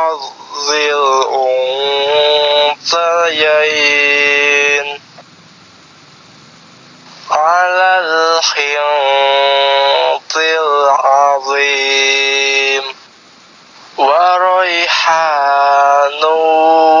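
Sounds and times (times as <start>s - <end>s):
recorded man chanting: 0.0s - 5.2s, 7.2s - 13.0s, 13.9s - 17.0s.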